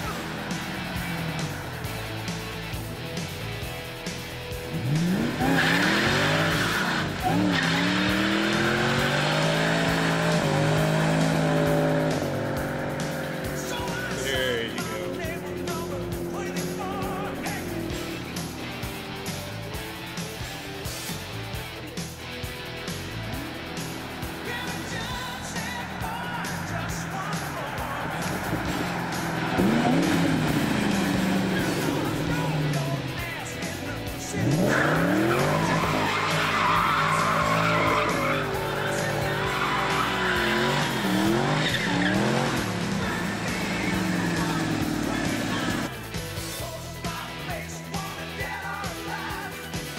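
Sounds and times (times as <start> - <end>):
tires squealing: 0.0 - 45.9
car engine revving hard: 0.0 - 46.0
background music: 0.0 - 49.9.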